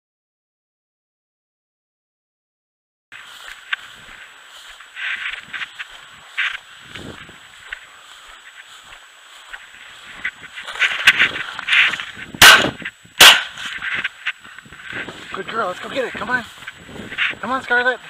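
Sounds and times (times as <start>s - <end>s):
footsteps through dry grass: 3.1s - 18.0s
shotgun shots: 12.4s - 13.6s.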